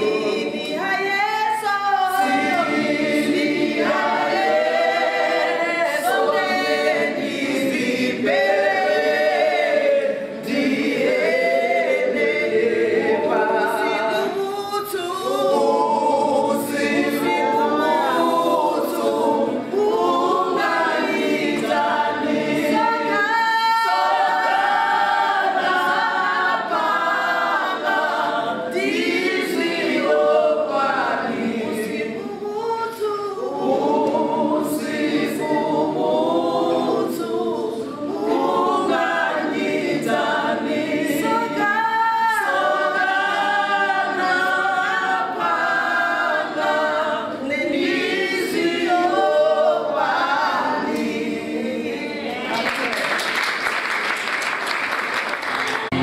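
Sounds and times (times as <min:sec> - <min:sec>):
women singing a cappella: 0:00.0 - 0:52.6.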